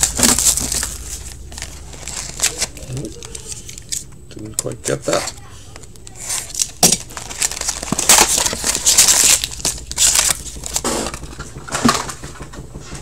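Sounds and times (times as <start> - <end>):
wrappers tearing and crinkling: 0.0 - 4.1, 4.8 - 12.1.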